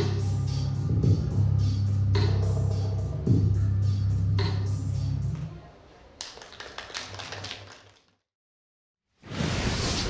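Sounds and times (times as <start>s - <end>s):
audience clapping: 6.2s - 8.2s.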